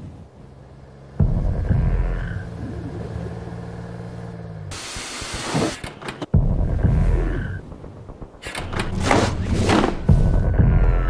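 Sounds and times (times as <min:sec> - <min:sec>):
low droning hum: 0:00.3 - 0:04.8
deep rumbling hit: 0:01.2 - 0:02.9, 0:06.3 - 0:11.0.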